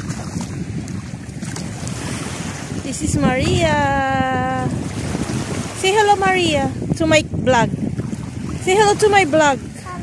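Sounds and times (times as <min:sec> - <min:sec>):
shallow sea water washing: 0:00.0 - 0:10.0
wind buffeting microphone: 0:00.0 - 0:10.0.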